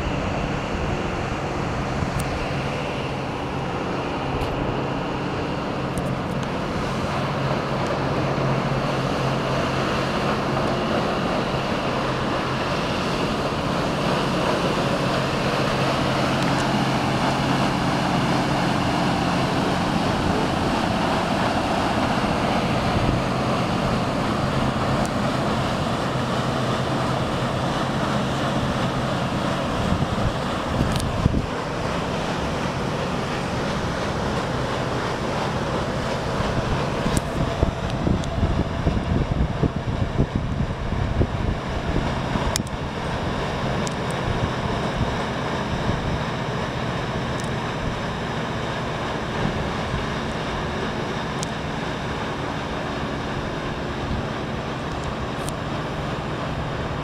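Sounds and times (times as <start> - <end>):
steady low hum: 0.0 - 57.0
wind and churning water: 0.0 - 57.0
wind buffeting microphone: 0.0 - 57.0.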